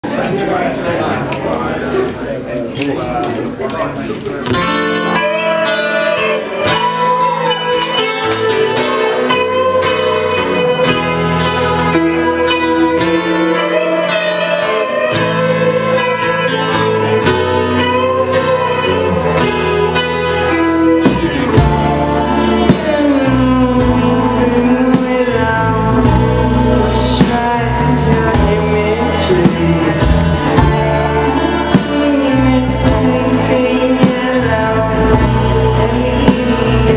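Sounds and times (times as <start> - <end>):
live band playing indie pop: 1.2 - 36.9
bass line: 4.5 - 36.9.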